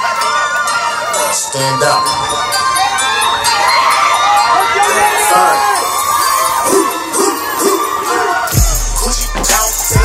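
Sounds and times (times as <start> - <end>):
crowd cheering and shouting: 0.0 - 10.0
loud music through loudspeaker: 4.6 - 10.0.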